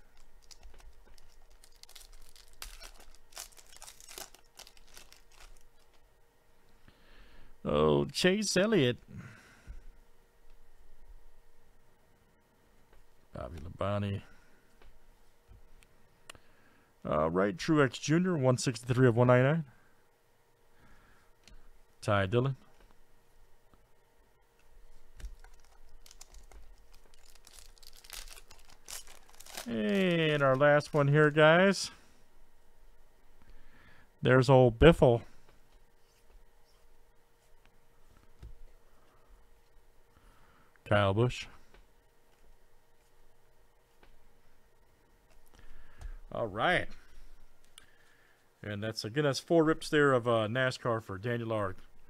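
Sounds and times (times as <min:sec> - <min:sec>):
foil wrapper tearing and crinkling: 0:00.0 - 0:05.9, 0:25.2 - 0:31.1.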